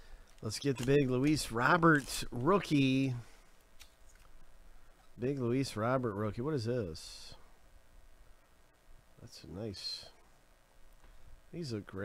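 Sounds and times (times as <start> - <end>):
cards rustling: 0.1 - 4.4.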